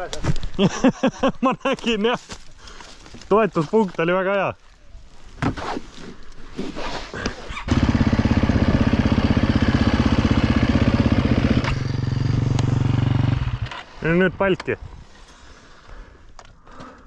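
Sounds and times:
dirt bike engine running: 7.6s - 13.8s.

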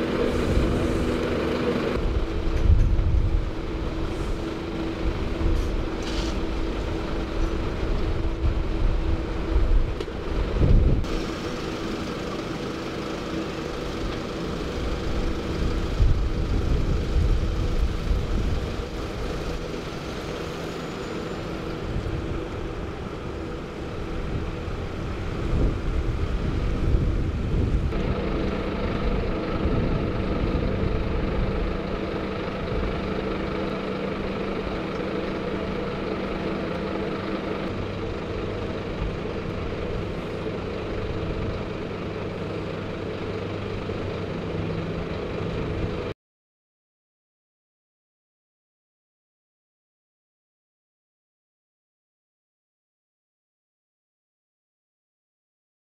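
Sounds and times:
ambulance engines idling: 0.0s - 46.2s.

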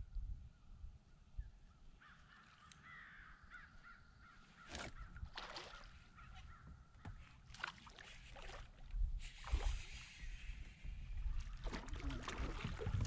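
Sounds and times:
crow cawing: 2.0s - 4.4s.

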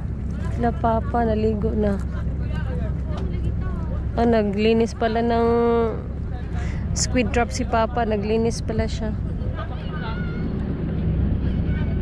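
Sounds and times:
boat engine rumbling: 0.0s - 12.0s
faint voices: 0.0s - 12.0s
water and wind noise: 0.0s - 12.0s.

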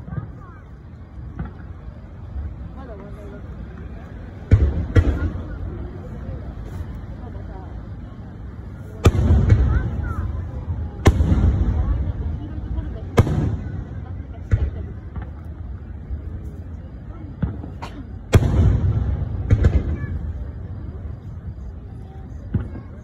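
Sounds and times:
fireworks bursting with rumble: 0.0s - 23.0s.

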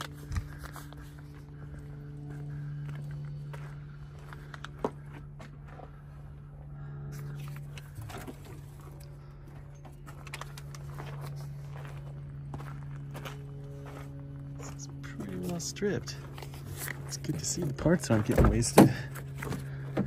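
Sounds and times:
footsteps on gravel: 0.0s - 20.0s
machine hum: 0.0s - 20.0s
clicks and handling noise: 7.4s - 11.0s.

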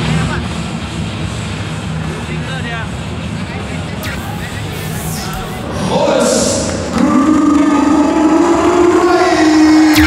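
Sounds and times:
crowd roar: 4.0s - 10.0s.

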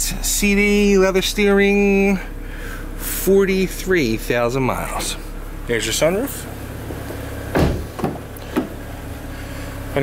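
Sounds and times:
car door clicks: 6.9s - 8.8s
car door latch clunk: 6.9s - 8.8s.

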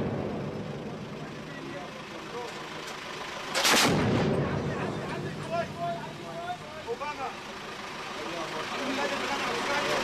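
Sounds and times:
echo rolling away: 0.0s - 2.4s
cannon firing burst: 3.6s - 5.0s.

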